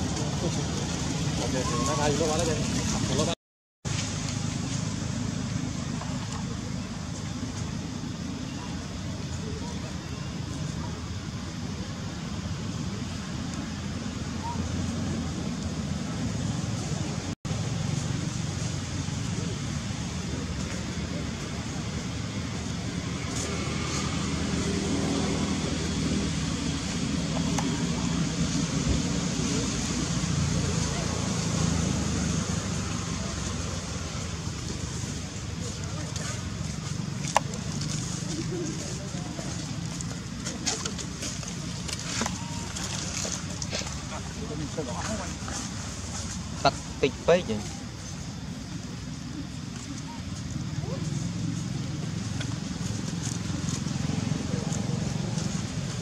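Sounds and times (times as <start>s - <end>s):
low engine-like rumble: 0.0s - 56.0s.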